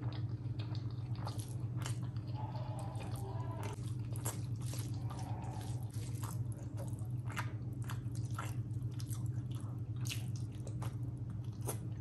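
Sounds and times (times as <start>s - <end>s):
smacking and chewing: 0.0s - 12.0s
steady low hum: 0.0s - 12.0s
wet squishes of fingers in rice: 0.0s - 12.0s.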